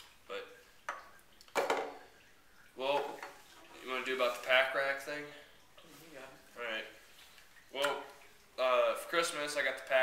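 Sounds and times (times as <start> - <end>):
plastic clatter on wooden table: 1.5 - 2.0.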